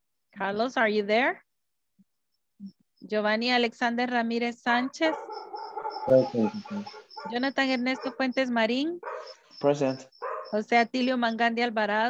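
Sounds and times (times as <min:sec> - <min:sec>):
dog barking: 0:04.8 - 0:08.4, 0:09.0 - 0:10.7.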